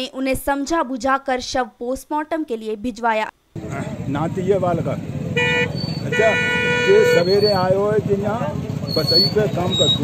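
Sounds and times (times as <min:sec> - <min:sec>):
voices: 0:00.0 - 0:10.0
vehicle horn honking: 0:05.3 - 0:07.8.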